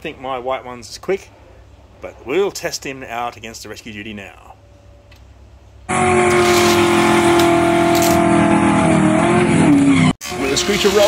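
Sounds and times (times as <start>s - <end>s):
racing car engine note: 5.9s - 10.2s.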